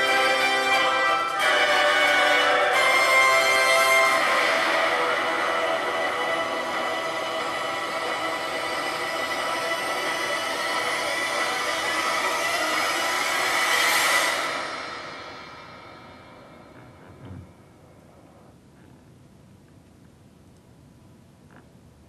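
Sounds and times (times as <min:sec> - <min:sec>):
music: 0:00.0 - 0:17.9.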